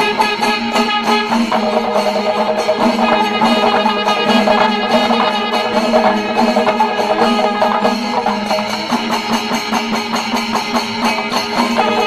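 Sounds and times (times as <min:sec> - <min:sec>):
held horn tone: 0:00.0 - 0:09.1
drums playing fast rhythm: 0:00.0 - 0:12.0.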